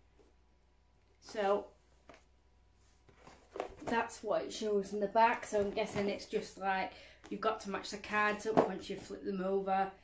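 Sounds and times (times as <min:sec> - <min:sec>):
woman speaking: 0:01.2 - 0:01.8, 0:03.8 - 0:10.0.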